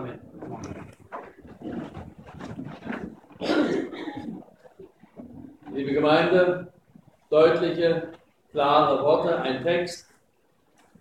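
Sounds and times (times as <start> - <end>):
people moving in room: 0.0 - 11.0.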